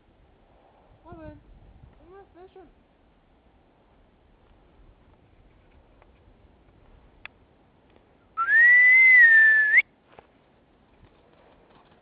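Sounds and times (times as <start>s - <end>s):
person whistling long note: 8.4s - 9.8s.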